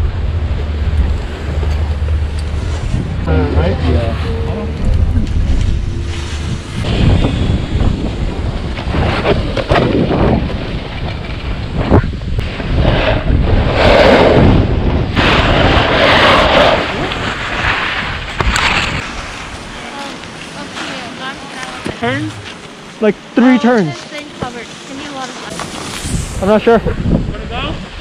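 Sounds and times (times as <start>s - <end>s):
wind buffeting microphone: 0.0s - 22.8s, 24.2s - 28.0s
ski edges scraping snow: 15.2s - 22.6s, 23.4s - 26.8s.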